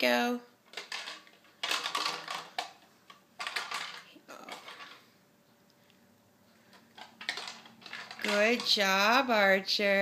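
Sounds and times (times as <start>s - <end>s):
plastic toy shapes rattling: 0.7s - 5.0s, 7.0s - 9.3s.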